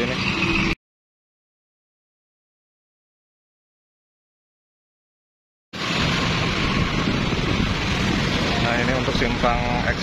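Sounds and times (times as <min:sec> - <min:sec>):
roadside traffic: 0:00.0 - 0:00.8, 0:05.8 - 0:10.0
wind rumbling on microphone: 0:05.8 - 0:10.0.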